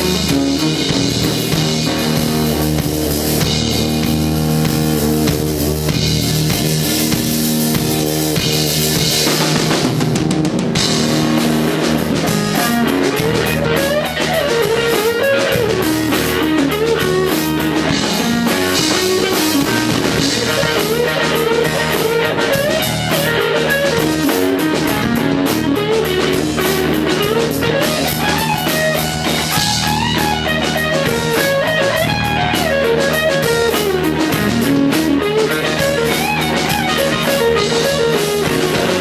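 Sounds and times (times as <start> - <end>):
drum kit: 0.0 - 39.0
electric guitar: 0.0 - 39.0.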